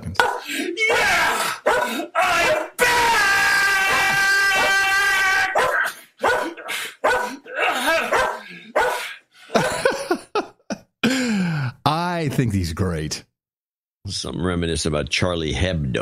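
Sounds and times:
dog barking and yipping: 0.2 - 2.8, 5.6 - 7.4, 8.0 - 9.1
dog long held cry: 0.2 - 2.8, 3.8 - 9.0.

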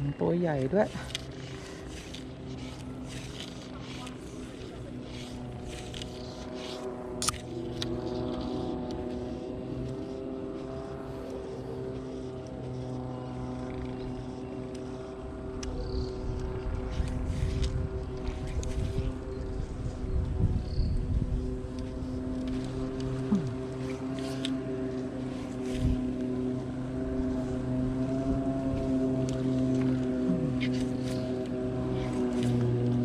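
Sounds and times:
motor droning hum: 0.0 - 33.0.

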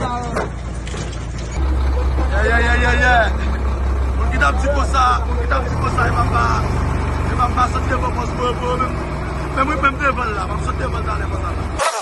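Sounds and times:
diesel engine drone: 0.0 - 11.8.

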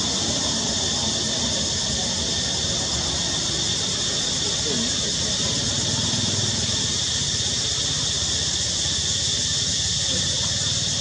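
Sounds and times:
continuous high hiss: 0.0 - 11.0.

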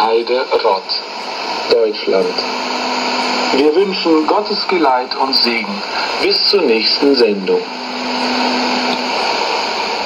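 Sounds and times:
radio static and hiss: 0.0 - 10.0.

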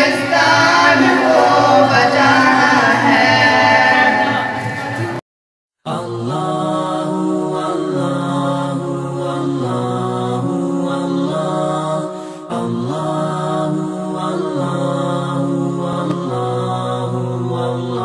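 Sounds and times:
layered chanted vocal music: 0.0 - 5.2, 5.8 - 18.0.

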